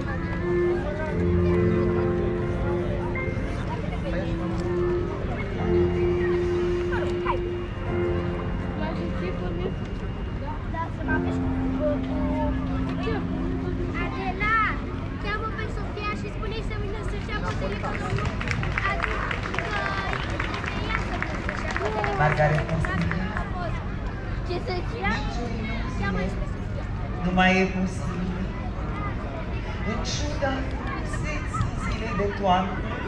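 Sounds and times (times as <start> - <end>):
distant speech over loudspeakers: 0.0 - 33.0.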